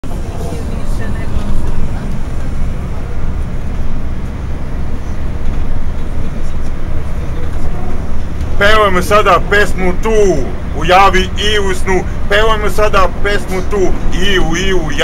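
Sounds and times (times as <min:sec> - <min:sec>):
bus engine rumble: 0:00.0 - 0:15.0
faint passenger voices: 0:00.0 - 0:15.0
road noise: 0:00.0 - 0:15.0.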